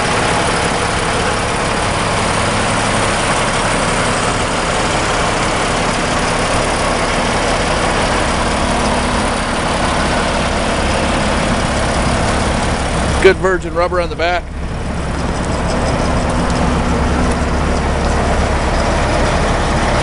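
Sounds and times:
diesel truck engine idling: 0.0s - 20.0s.

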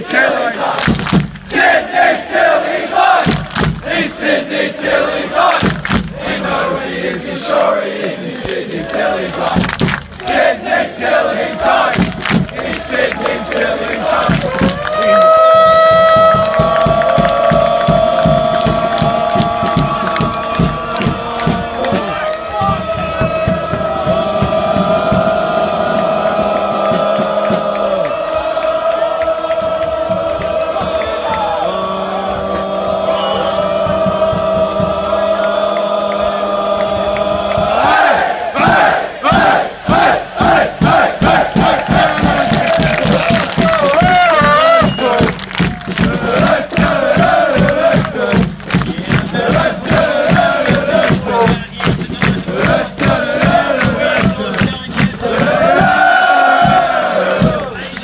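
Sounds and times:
crowd chanting: 0.0s - 15.4s, 16.4s - 58.0s
crowd singing long held notes: 0.0s - 58.0s
rhythmic clapping: 0.2s - 58.0s
crowd shouts: 10.2s - 48.4s, 55.2s - 58.0s.

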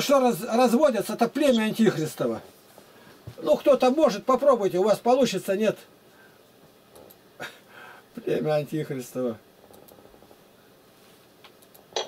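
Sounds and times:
computer mouse click: 11.4s - 12.0s.

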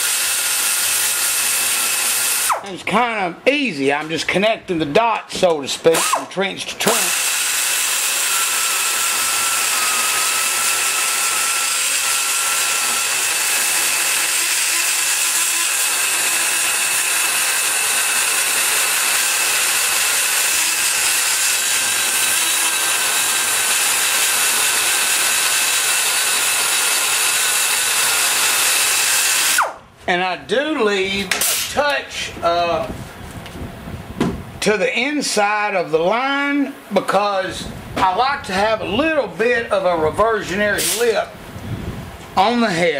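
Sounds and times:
die grinder grinding metal: 0.0s - 2.8s, 5.9s - 29.8s.

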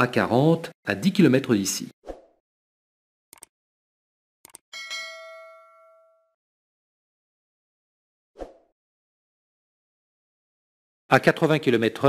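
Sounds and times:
short clicks: 3.3s - 3.5s, 4.4s - 4.6s
bell ding: 4.7s - 6.4s.

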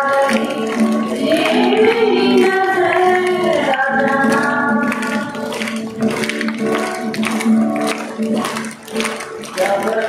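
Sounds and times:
strummed acoustic guitar: 0.0s - 10.0s
children singing in unison: 0.3s - 5.3s.

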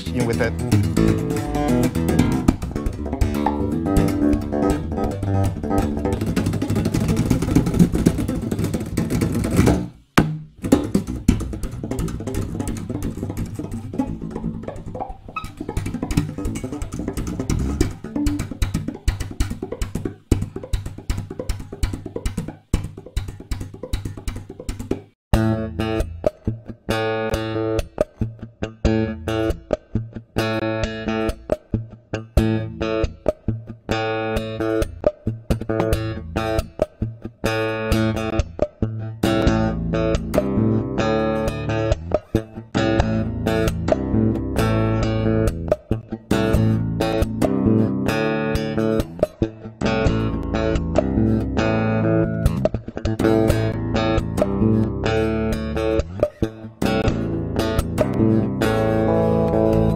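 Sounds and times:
electric bass slap and pluck: 0.0s - 59.9s.

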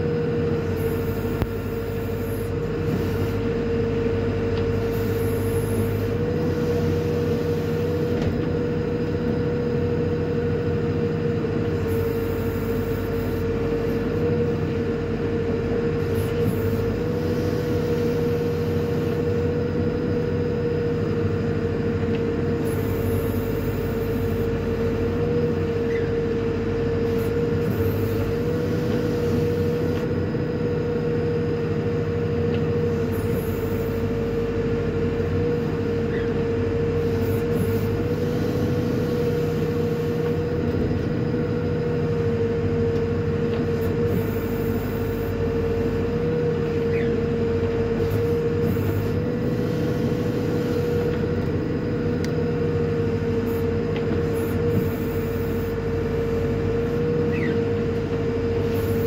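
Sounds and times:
diesel engine rumble: 0.0s - 59.0s.

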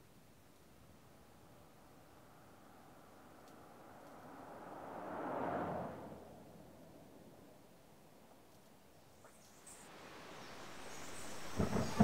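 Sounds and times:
steady hiss: 8.1s - 12.0s.

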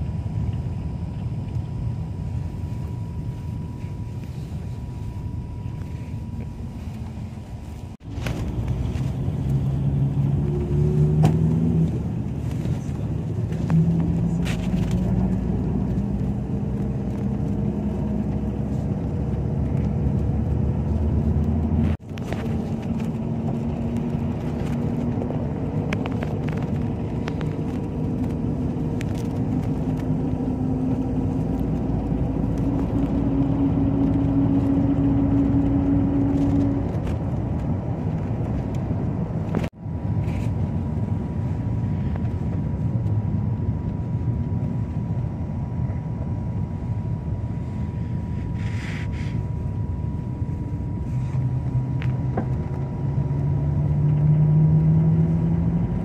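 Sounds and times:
bus engine drone: 0.0s - 56.0s
road rumble: 0.0s - 56.0s.

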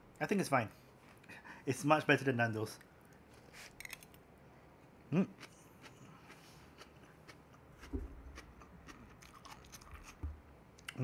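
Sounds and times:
chewing crisp raw vegetables: 5.2s - 10.2s
soft low thump: 7.9s - 8.3s.

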